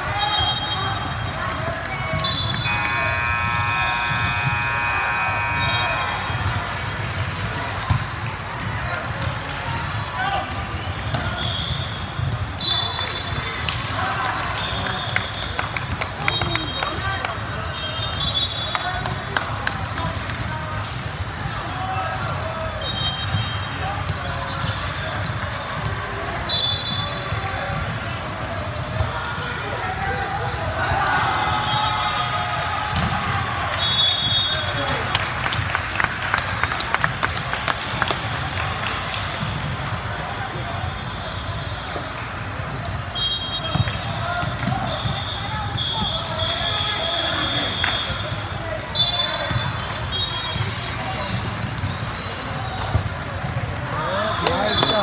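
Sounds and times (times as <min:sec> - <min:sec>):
volleyballs hit and bouncing: 0:00.0 - 0:17.5, 0:32.6 - 0:33.5, 0:42.7 - 0:46.5, 0:49.4 - 0:55.0
shoe squeaks: 0:51.8 - 0:52.9.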